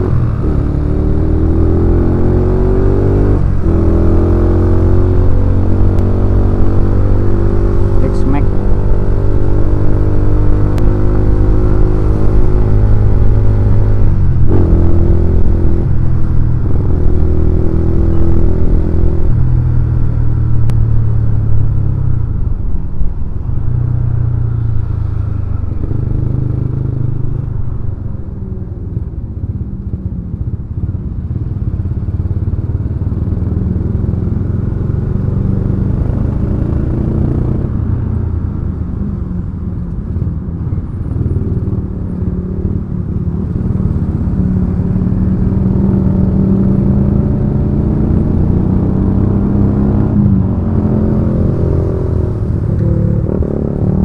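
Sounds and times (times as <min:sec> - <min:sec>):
motorcycle engine revving: 0:00.0 - 0:22.0, 0:40.9 - 0:54.0
road rumble: 0:00.0 - 0:54.0.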